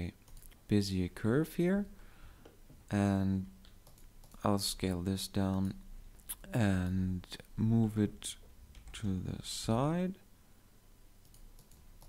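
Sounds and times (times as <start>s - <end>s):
keyboard and mouse clicks: 3.6s - 4.4s, 11.2s - 12.0s.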